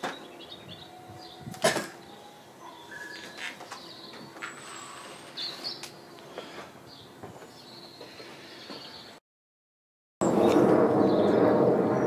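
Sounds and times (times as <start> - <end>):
faint bird chirps: 0.4 - 5.9.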